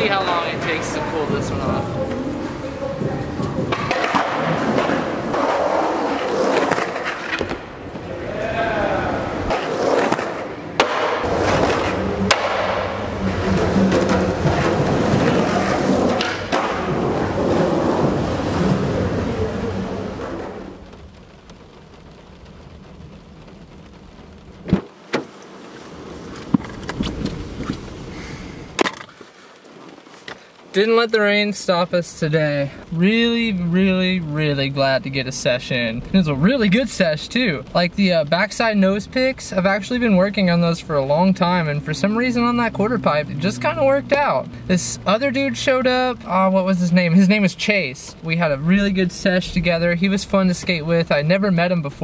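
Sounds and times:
skateboard wheels rolling on concrete: 0:00.0 - 0:52.0
skateboard clacks: 0:03.0 - 0:08.1, 0:09.4 - 0:19.3.

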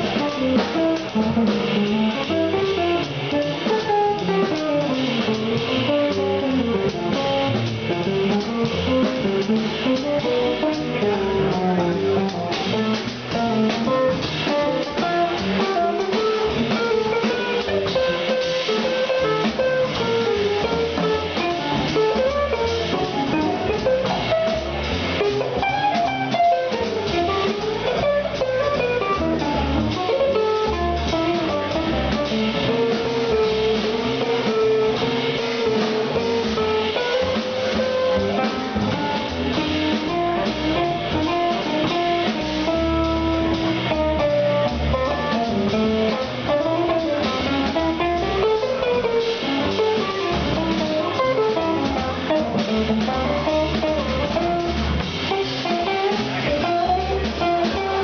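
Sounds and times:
drum kit with cymbals: 0:00.0 - 0:58.0
electric guitar melody: 0:00.0 - 0:58.0
upright double bass: 0:00.0 - 0:58.0.

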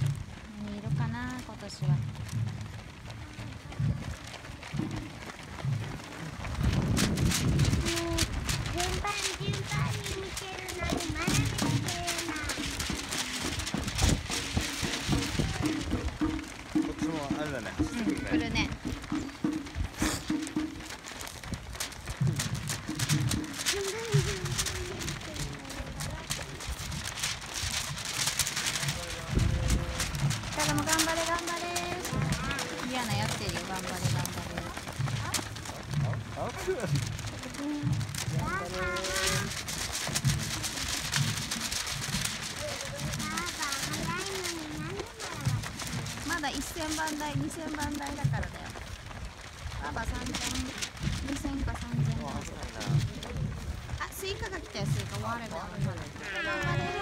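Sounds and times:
runners footsteps on asphalt: 0:00.0 - 0:57.0.

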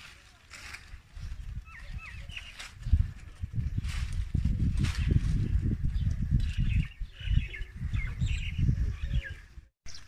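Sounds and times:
leaves rustling: 0:00.0 - 0:06.8.

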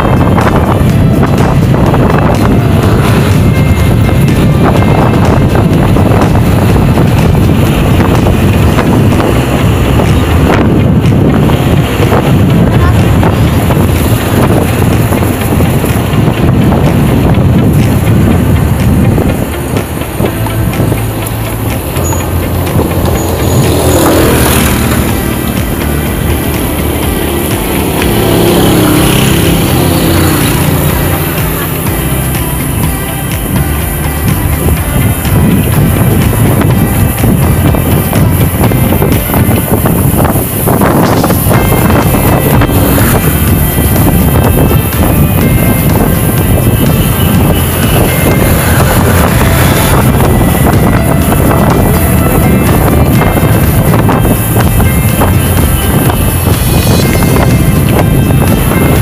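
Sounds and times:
road traffic: 0:00.0 - 0:59.0
wind buffeting microphone: 0:00.0 - 0:59.0.

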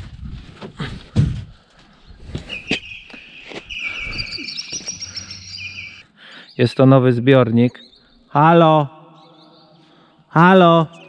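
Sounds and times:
small birds chirping and trilling: 0:01.8 - 0:11.0.

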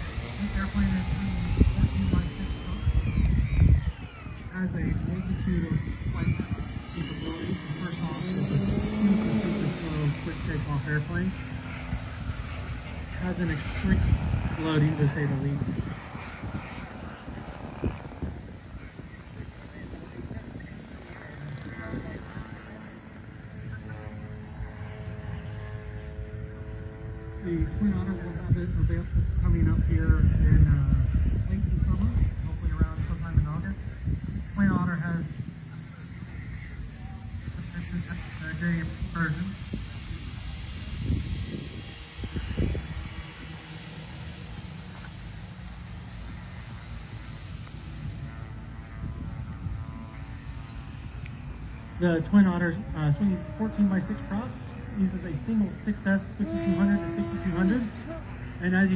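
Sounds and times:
wind buffeting microphone: 0:00.0 - 0:25.1, 0:26.2 - 0:52.2
model plane electric motors humming: 0:00.0 - 0:58.9.

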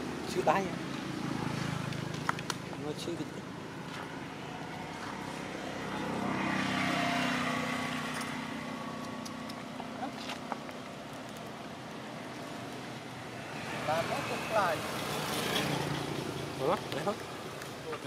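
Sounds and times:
passing vehicle engine drone: 0:04.1 - 0:09.5.

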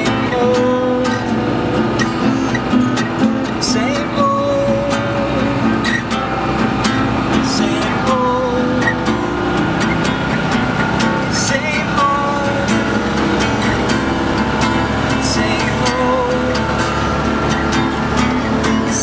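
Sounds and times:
acoustic guitar music: 0:00.0 - 0:19.0
car engine and road noise: 0:00.0 - 0:19.0.

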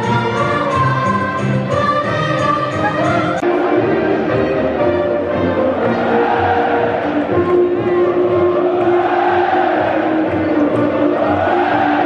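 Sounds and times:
large crowd noise: 0:00.0 - 0:12.0
music over public address system: 0:00.0 - 0:12.0.

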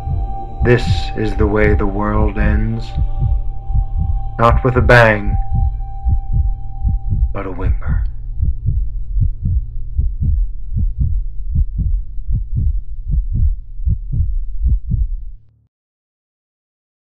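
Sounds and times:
heartbeat thumps: 0:00.0 - 0:15.4
low steady drone: 0:00.0 - 0:15.5.

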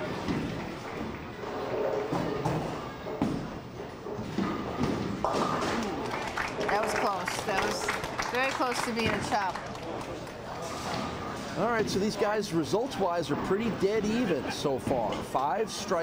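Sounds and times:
bowling ball rolling: 0:00.0 - 0:07.4
crowd chatter: 0:00.0 - 0:16.0
people clapping: 0:05.3 - 0:10.6.

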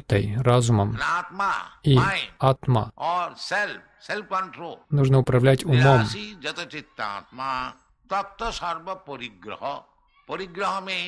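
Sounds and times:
person talking: 0:00.0 - 0:03.0, 0:04.9 - 0:06.3.

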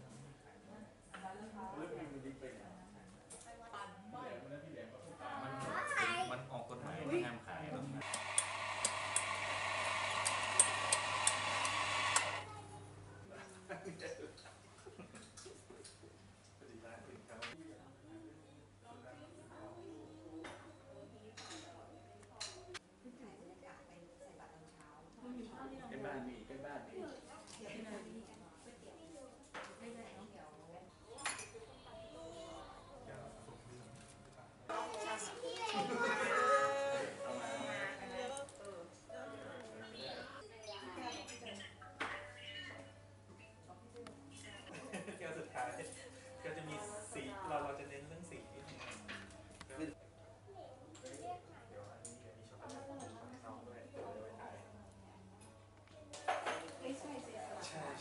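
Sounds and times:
electric coffee grinder running: 0:08.0 - 0:12.5.

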